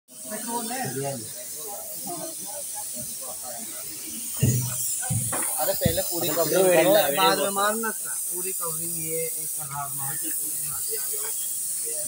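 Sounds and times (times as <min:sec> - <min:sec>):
faint voices: 0:00.1 - 0:12.0
paint spray gun hissing: 0:00.1 - 0:12.0.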